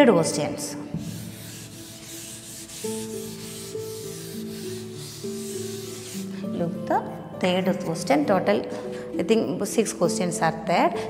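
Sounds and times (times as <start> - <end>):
duster wiping chalkboard: 0.9 - 6.7.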